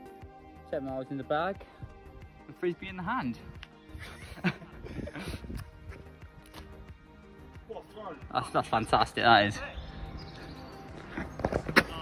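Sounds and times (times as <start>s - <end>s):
faint street background: 0.0s - 12.0s.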